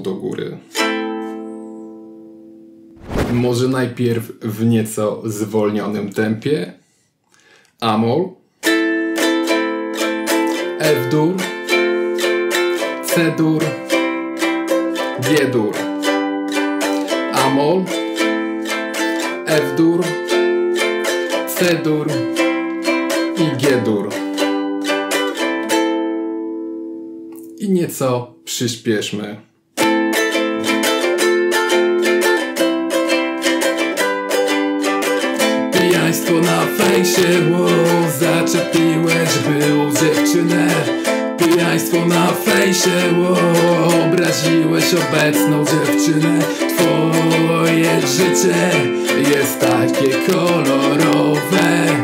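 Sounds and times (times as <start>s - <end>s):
ukulele chord ringing: 8.6s - 27.5s, 29.8s - 52.0s.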